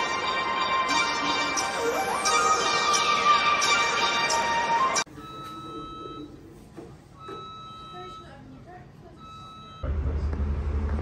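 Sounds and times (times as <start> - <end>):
electronic beep: 4.8 - 6.4.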